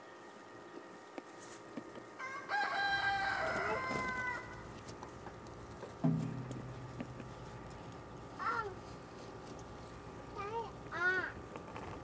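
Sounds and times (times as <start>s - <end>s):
rooster crowing: 2.2s - 4.6s.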